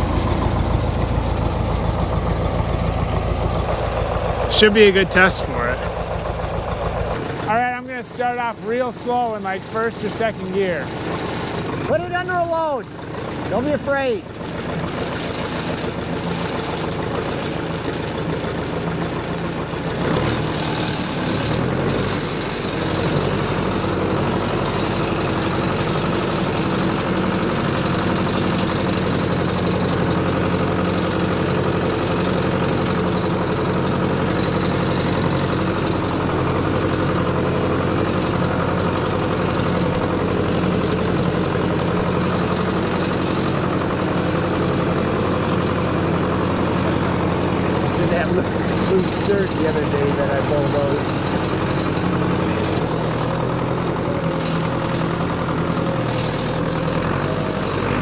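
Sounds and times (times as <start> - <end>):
tractor diesel engine under load: 0.0 - 58.0.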